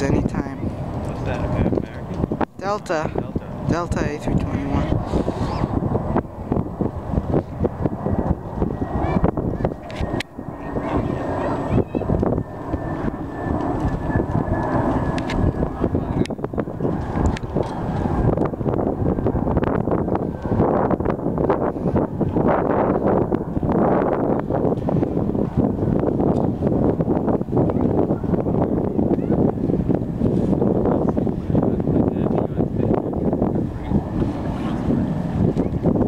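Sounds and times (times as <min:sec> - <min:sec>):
jet airliner rumble: 0:00.0 - 0:36.0
jet engine whine: 0:00.0 - 0:36.0
wind buffeting microphone: 0:00.0 - 0:36.0.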